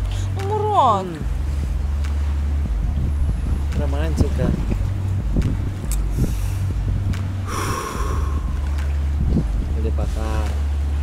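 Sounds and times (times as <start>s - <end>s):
wind rumble on microphone: 0.0s - 11.0s
person snorting: 7.5s - 8.6s.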